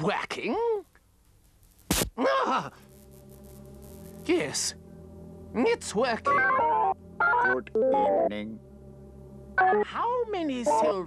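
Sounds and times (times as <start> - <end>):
electrical hum of several tones: 0.0 - 11.0
sharp click: 1.9 - 2.1.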